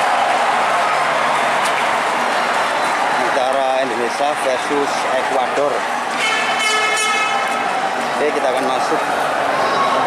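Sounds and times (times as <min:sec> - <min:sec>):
large crowd voices: 0:00.0 - 0:10.0.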